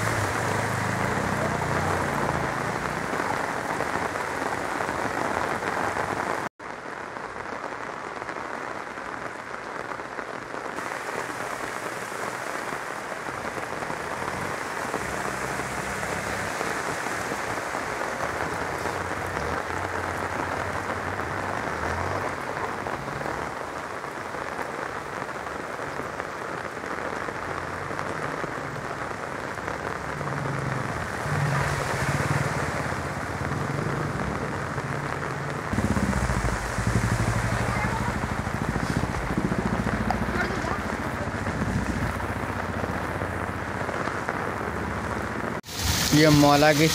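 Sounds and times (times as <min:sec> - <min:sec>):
auto-rickshaw engine: 0:00.0 - 0:04.2, 0:13.6 - 0:23.6, 0:29.6 - 0:45.6
motorbike engines: 0:00.0 - 0:06.4, 0:13.1 - 0:23.7, 0:27.5 - 0:46.9
heavy rain hissing: 0:00.0 - 0:46.9.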